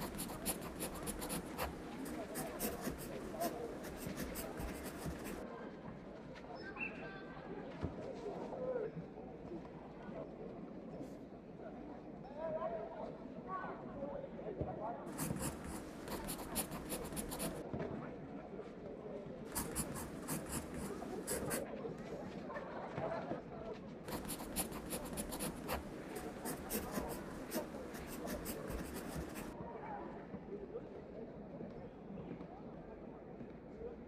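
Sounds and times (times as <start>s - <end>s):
pencil scratching on paper: 0.0s - 5.4s, 15.1s - 17.6s, 19.5s - 21.6s, 24.1s - 29.6s
murmur of distant voices: 0.0s - 34.0s.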